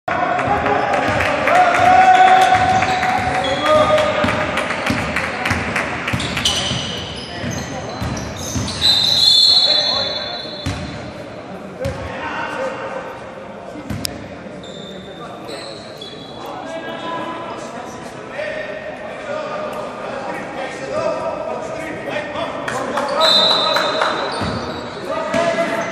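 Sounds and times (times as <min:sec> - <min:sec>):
players' voices: 0:00.1 - 0:25.9.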